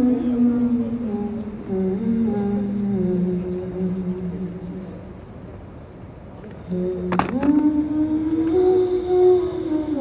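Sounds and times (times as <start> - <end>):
person humming a slow melody: 0.0 - 5.0, 6.5 - 10.0.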